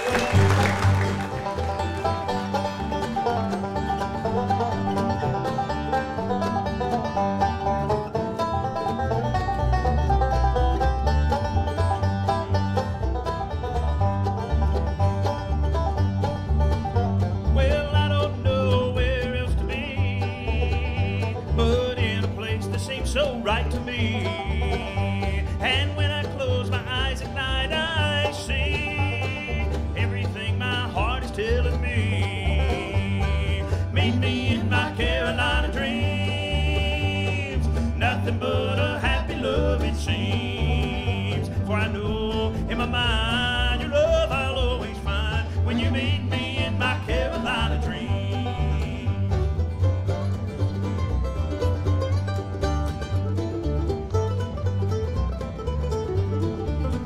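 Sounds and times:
bluegrass band playing: 0:00.0 - 0:57.0
upright bass beat: 0:00.0 - 0:57.0
person singing: 0:17.6 - 0:49.4.

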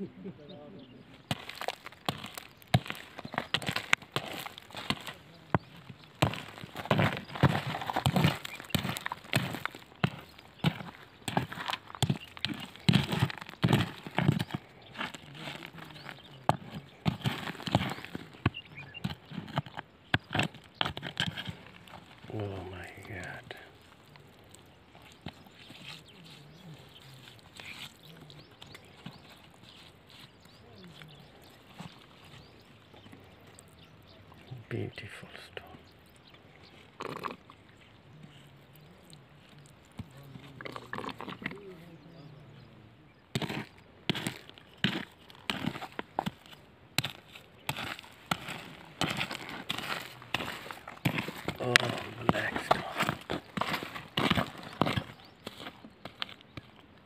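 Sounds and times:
gravel and stones clattering: 0:01.2 - 0:33.9, 0:39.6 - 0:42.0, 0:43.3 - 0:57.0.

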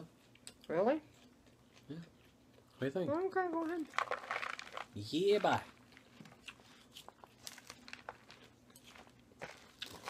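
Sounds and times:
salad crunching rustles: 0:00.2 - 0:10.0.

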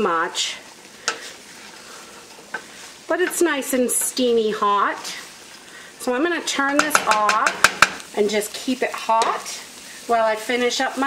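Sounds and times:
food sizzling in a skillet: 0:00.0 - 0:11.0
wooden spatula stirring: 0:06.6 - 0:08.0
spatula knocking on pan: 0:06.7 - 0:08.0.

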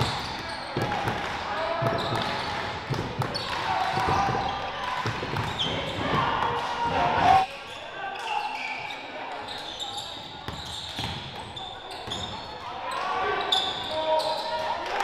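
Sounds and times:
indistinct echoing voices: 0:00.0 - 0:10.5
sneakers squeaking: 0:00.0 - 0:14.8.

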